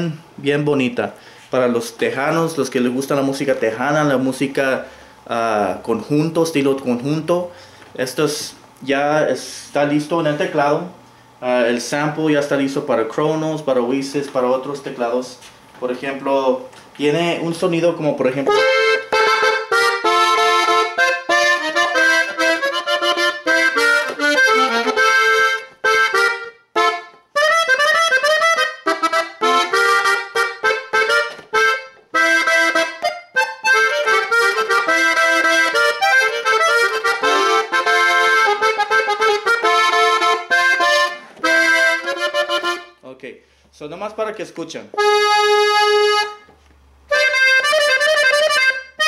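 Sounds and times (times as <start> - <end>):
button accordion melody: 18.2 - 43.0, 44.9 - 49.0.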